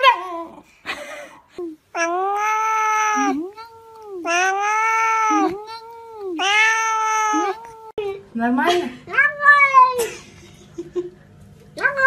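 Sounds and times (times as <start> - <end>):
cat meowing loudly: 2.0 - 5.6, 6.4 - 7.9.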